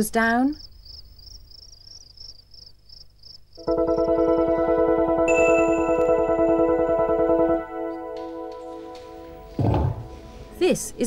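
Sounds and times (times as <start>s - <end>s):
crickets chirping: 0.0s - 5.3s
electronic music: 3.6s - 10.6s.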